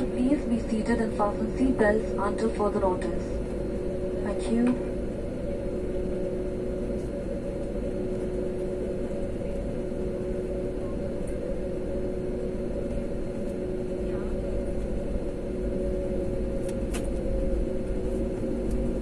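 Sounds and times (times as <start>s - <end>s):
jet engines humming: 0.0s - 19.0s.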